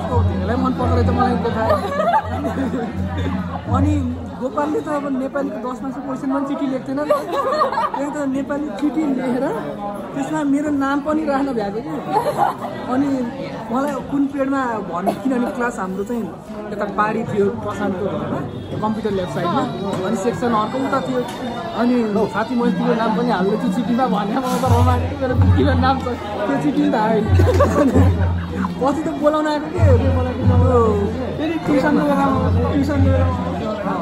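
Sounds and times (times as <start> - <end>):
people chatting: 0.0 - 34.0.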